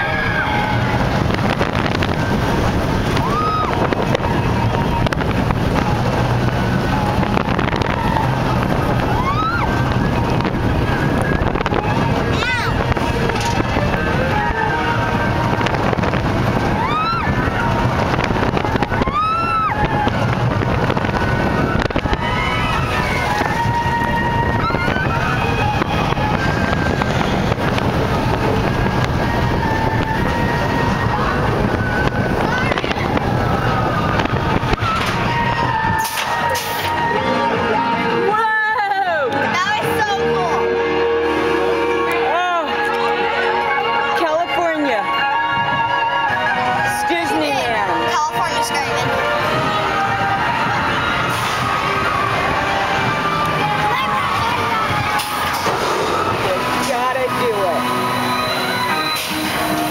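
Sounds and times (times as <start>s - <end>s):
riders screaming and whooping: 0.0s - 39.5s, 49.0s - 59.9s
roller coaster wind rush: 0.0s - 59.9s.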